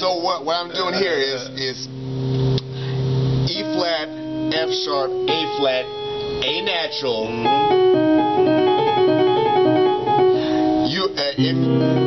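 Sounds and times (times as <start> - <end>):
piano playing blues run: 0.0 - 12.0.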